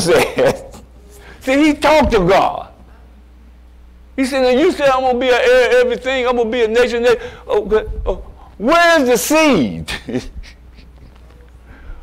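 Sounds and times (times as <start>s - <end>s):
faint room noise: 0.0s - 12.0s
low hum from sound system: 0.0s - 12.0s.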